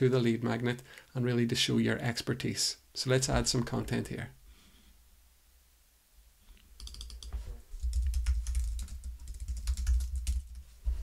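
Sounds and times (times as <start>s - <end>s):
keyboard typing: 6.8s - 10.6s.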